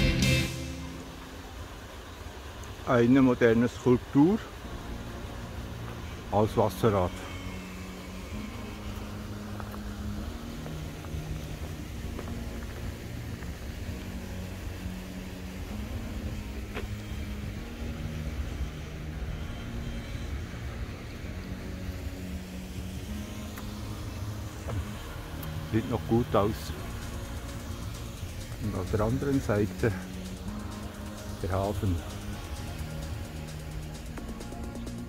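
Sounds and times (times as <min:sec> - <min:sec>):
low rumble of road traffic: 0:00.0 - 0:35.0.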